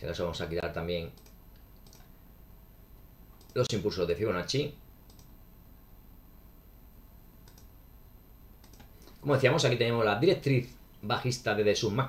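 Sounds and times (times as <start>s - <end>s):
low room noise: 0.0s - 12.0s
computer mouse clicks: 1.2s - 2.1s, 3.4s - 3.6s, 5.1s - 5.3s, 7.4s - 7.7s, 8.6s - 9.2s.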